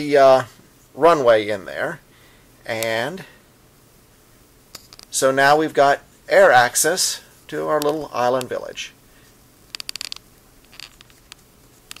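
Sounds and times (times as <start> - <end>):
handling clicks and rustles: 9.6 - 12.0.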